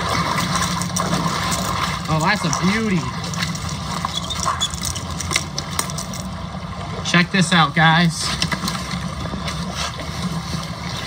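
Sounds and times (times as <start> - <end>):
river current rushing: 0.0 - 11.0.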